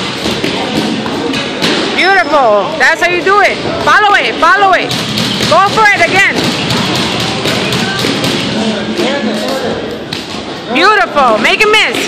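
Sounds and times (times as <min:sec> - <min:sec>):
boxing gloves thudding: 0:04.9 - 0:09.1.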